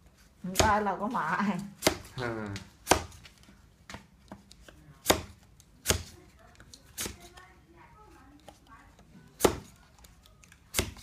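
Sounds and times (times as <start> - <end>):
hand tool striking cardboard tubes: 1.8 - 3.2, 3.9 - 6.2, 9.4 - 9.8, 10.7 - 11.0.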